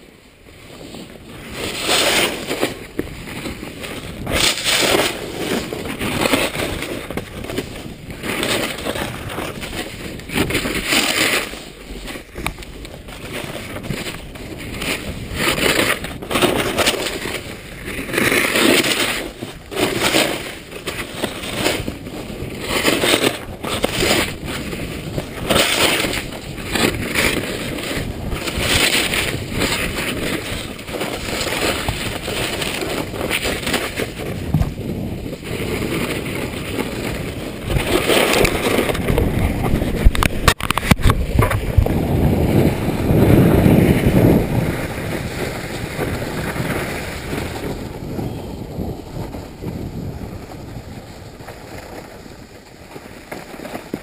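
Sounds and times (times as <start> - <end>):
snowboard scraping on snow: 0.0 - 54.0.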